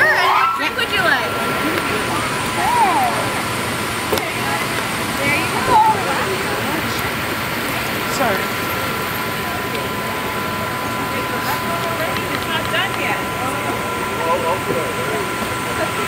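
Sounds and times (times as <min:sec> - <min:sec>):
people talking indistinctly: 0:00.0 - 0:16.0
steady rushing noise: 0:00.0 - 0:16.0.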